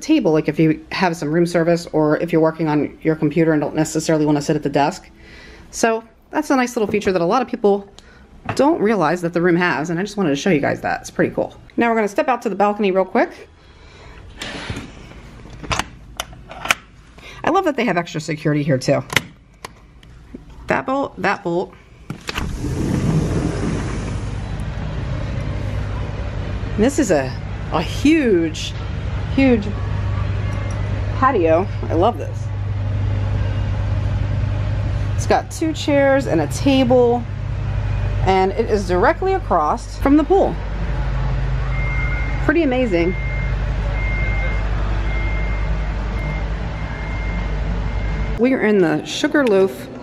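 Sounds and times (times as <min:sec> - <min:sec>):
low outdoor rumble with hiss: 0:00.0 - 0:50.0
machine hum: 0:22.0 - 0:48.4
faint high beep: 0:41.7 - 0:42.4.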